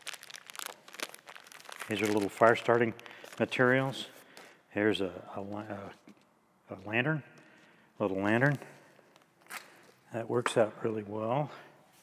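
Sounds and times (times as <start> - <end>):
plastic wrapping crinkling: 0.0 - 4.7, 7.5 - 10.1.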